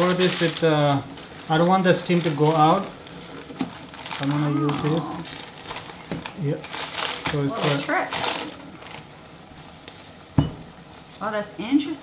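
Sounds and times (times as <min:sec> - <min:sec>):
parchment paper crinkling: 0:00.0 - 0:09.1.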